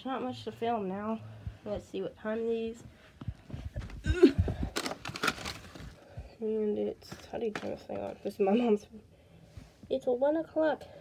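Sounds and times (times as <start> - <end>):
footsteps on carpet: 1.4 - 4.0
camera rustling: 3.5 - 6.2.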